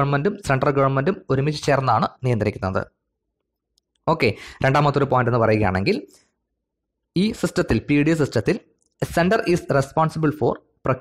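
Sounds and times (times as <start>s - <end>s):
man speaking: 7.1s - 11.0s.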